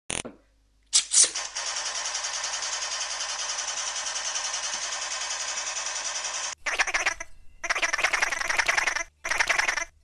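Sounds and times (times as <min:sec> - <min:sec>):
machine-gun firing rapidly: 0:01.4 - 0:06.9.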